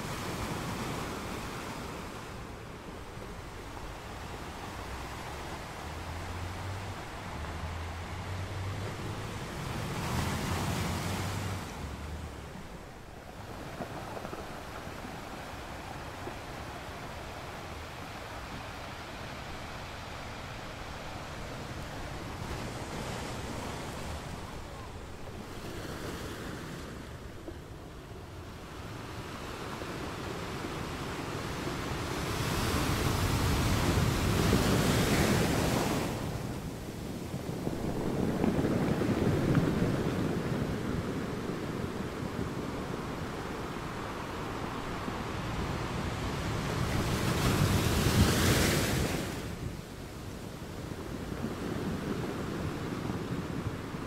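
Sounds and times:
surf breaking on pebble shore: 0.0 - 27.4, 28.7 - 54.0.

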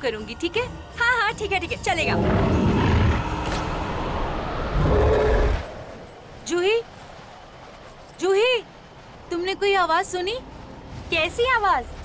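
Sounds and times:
deep rumbling creature growl: 2.0 - 5.6.

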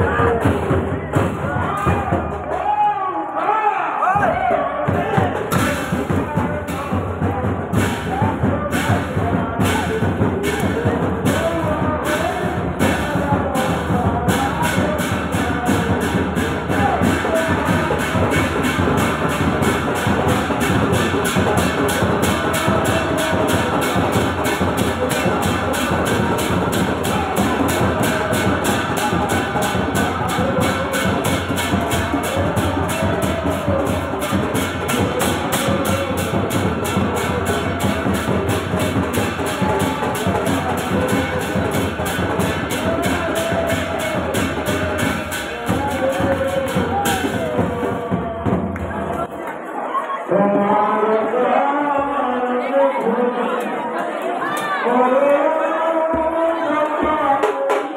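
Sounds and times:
crowd singing devotional chant: 0.0 - 2.6, 4.1 - 57.9
percussion beat: 0.0 - 3.1, 4.0 - 49.4, 56.0 - 57.9.

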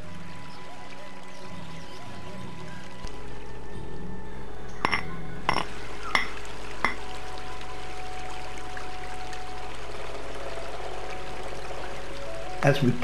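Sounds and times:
stream rushing: 4.9 - 13.0.

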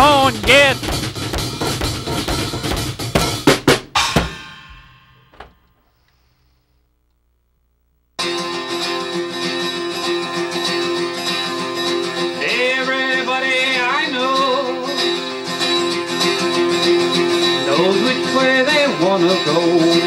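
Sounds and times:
drum kit strikes: 0.0 - 5.6
acoustic guitar chords: 0.0 - 5.7, 8.2 - 20.0
cymbal ringing: 4.0 - 5.3.

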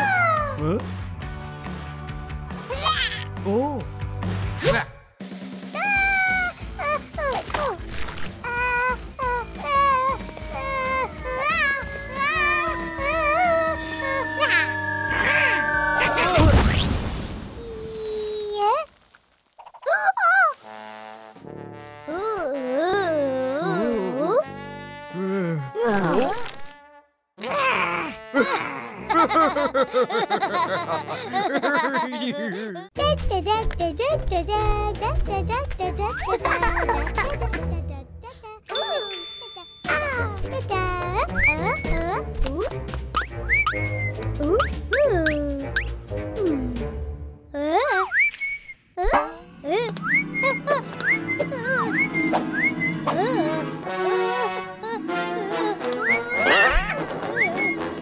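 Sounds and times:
background music: 0.0 - 17.0, 21.2 - 26.6, 27.5 - 48.2, 49.0 - 58.0
person whistling a tune: 41.3 - 42.0, 43.2 - 45.9, 50.0 - 53.0, 56.0 - 56.6, 57.3 - 57.9.

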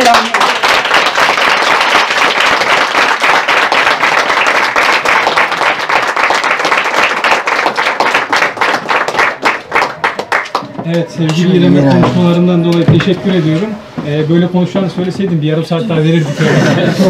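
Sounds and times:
audience applause: 0.0 - 11.4.

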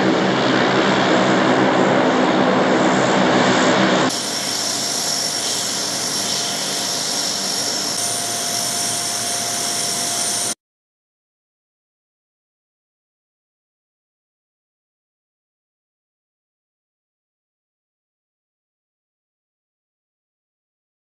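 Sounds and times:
high turbine whine: 0.0 - 10.6
propeller drone: 0.0 - 10.6.

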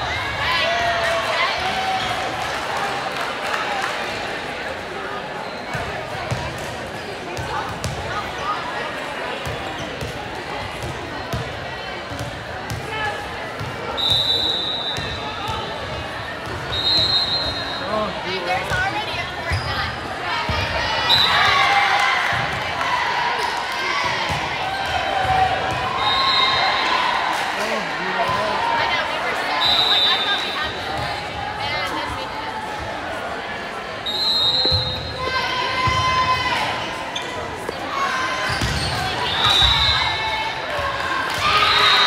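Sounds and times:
balls bouncing on court floor: 5.7 - 8.2, 18.5 - 19.7, 24.0 - 25.9, 38.4 - 39.8.

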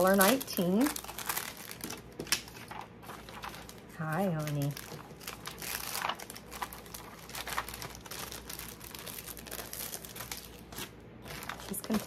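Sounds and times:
packaging and paper crinkling: 0.0 - 12.0.

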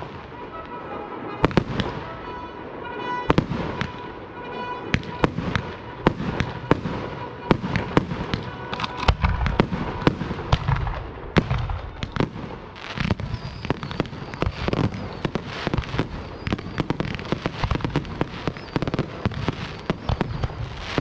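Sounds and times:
firework bangs: 0.0 - 21.0
firework crackle: 0.0 - 21.0
deep firework boom: 9.1 - 15.4.

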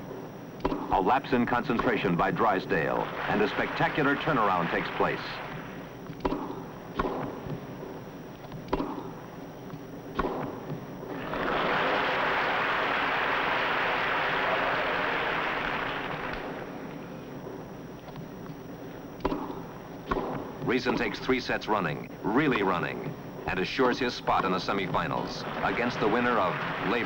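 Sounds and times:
crowd applause: 3.0 - 5.5, 11.1 - 16.7, 25.4 - 27.0
tennis ball struck by rackets: 6.2 - 7.4, 8.7 - 9.1, 19.2 - 20.5.

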